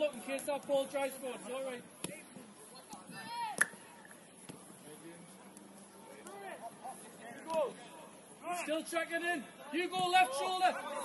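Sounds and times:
footballers shouting: 8.5 - 11.0.

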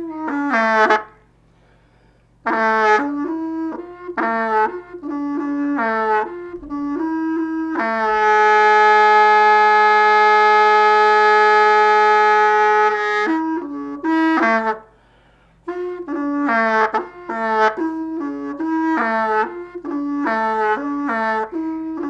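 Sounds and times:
reed wind instrument melody: 0.0 - 22.0.

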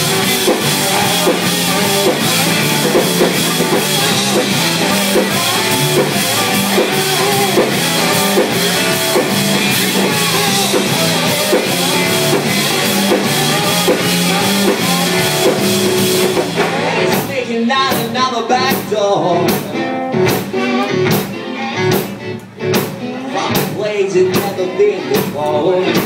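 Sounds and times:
bass guitar: 0.0 - 26.0
drum kit beat: 0.0 - 26.0
electric guitar: 0.0 - 26.0.

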